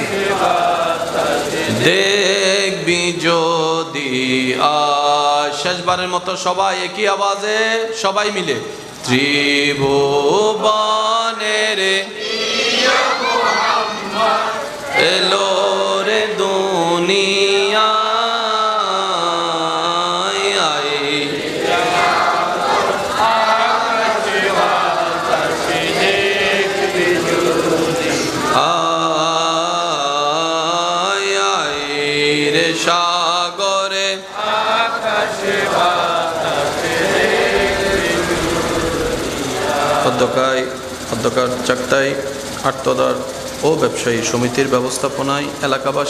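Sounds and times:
man chanting over loudspeakers: 0:00.0 - 0:12.2, 0:14.2 - 0:22.2, 0:23.0 - 0:46.0
man singing into a microphone: 0:00.0 - 0:12.2, 0:15.0 - 0:21.3, 0:27.2 - 0:35.1.

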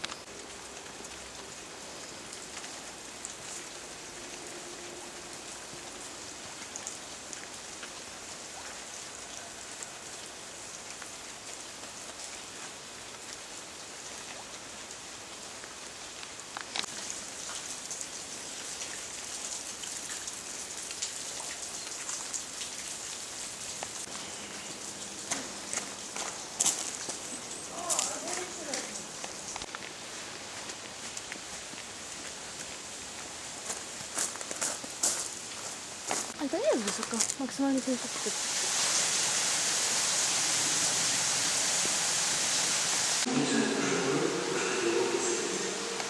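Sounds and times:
rain pattering on leaves: 0:00.0 - 0:43.3.

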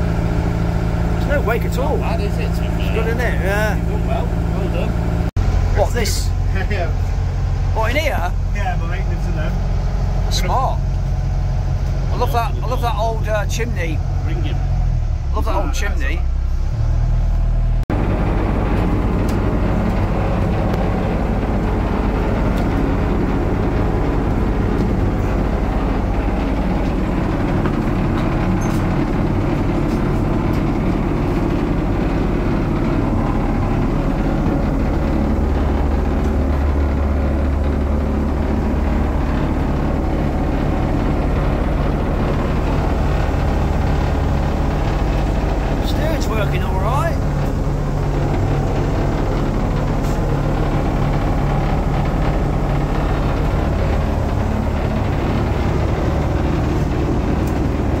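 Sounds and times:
boat engine droning: 0:00.0 - 0:58.0.

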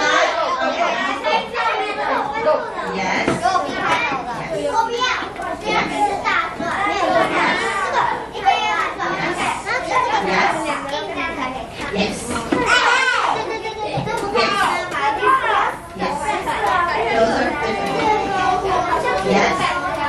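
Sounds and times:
children babbling: 0:00.0 - 0:20.0.

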